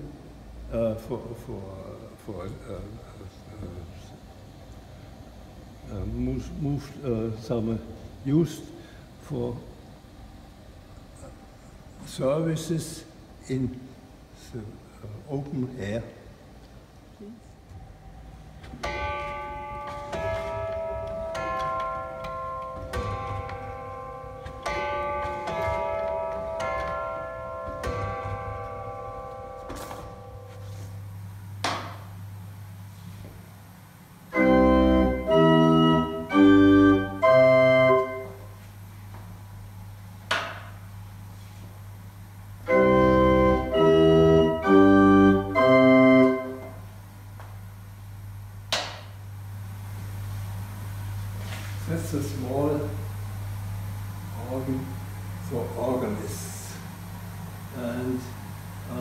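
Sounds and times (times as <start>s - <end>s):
organ blower hum: 18.2s - 40.2s, 40.8s - 59.0s
small pipe organ notes: 18.8s - 31.6s, 34.3s - 38.7s, 42.6s - 47.0s.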